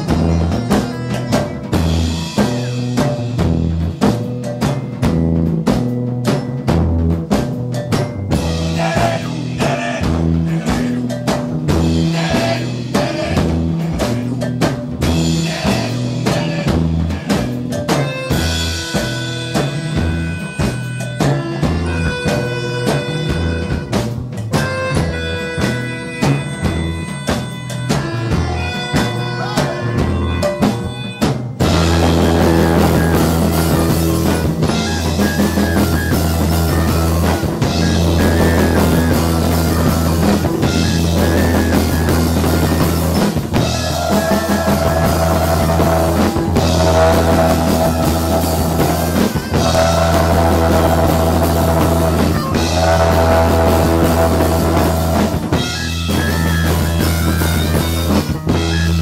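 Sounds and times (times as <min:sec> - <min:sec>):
live rock band playing: 0:00.0 - 0:59.0.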